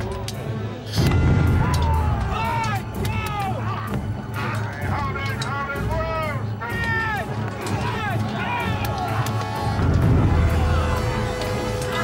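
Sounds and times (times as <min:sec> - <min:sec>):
background music: 0:00.0 - 0:12.0
men yelling: 0:01.5 - 0:09.8.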